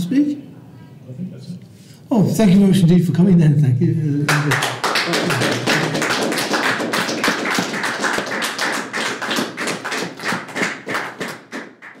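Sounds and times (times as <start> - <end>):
audience applauding: 4.3 - 12.0.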